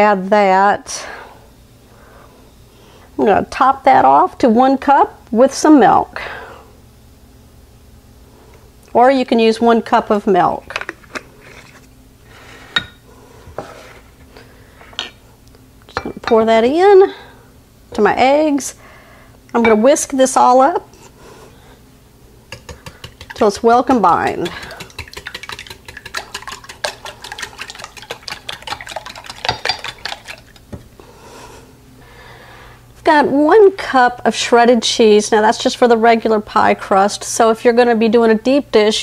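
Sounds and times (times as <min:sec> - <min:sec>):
glass ringing: 0:12.8 - 0:13.0
whisk clicking against glass: 0:22.5 - 0:30.7
glass cups knocking: 0:24.2 - 0:30.3.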